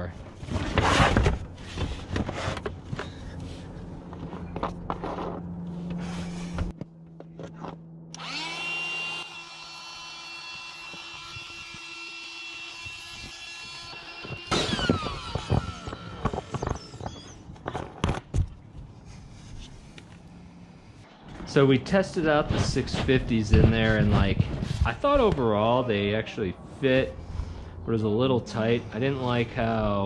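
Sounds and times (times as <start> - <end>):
inflator motor whine: 2.7 - 17.2.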